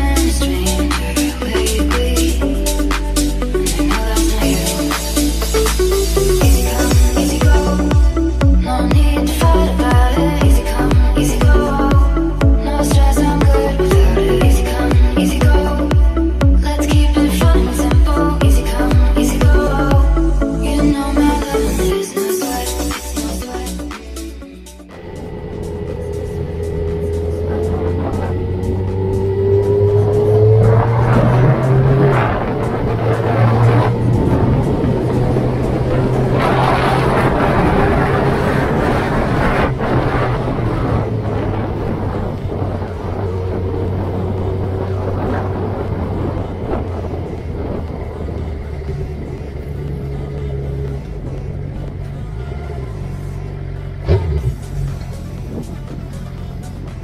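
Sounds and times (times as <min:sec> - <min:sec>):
rushing wind noise: 0:24.9 - 0:53.0
motorcycle engine accelerating: 0:24.9 - 0:57.0.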